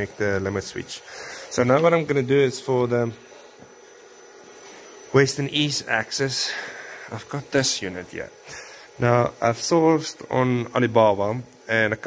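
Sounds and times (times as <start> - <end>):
man speaking: 0.0 - 3.2, 5.1 - 8.4, 9.0 - 12.0.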